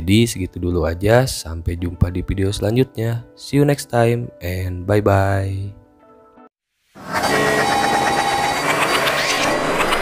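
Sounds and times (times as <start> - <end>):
brief electronic tones: 7.0 - 10.0.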